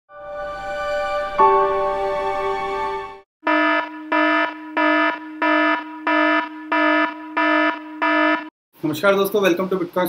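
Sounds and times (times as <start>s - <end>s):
electronic warning beeps: 3.5s - 8.5s.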